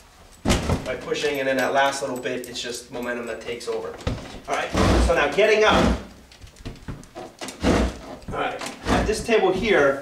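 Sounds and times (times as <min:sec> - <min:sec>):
wooden chair knocks and rustling: 0:00.4 - 0:01.0.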